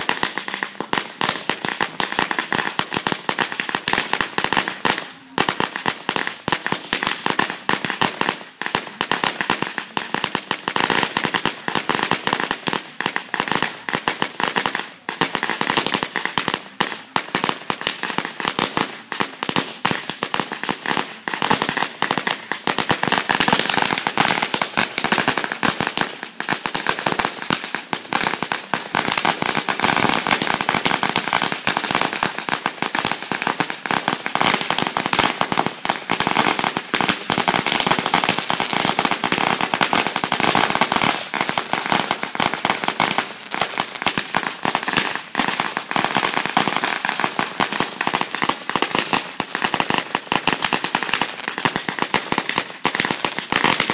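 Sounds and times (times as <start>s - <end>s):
firecrackers rattling: 15.2s - 53.9s.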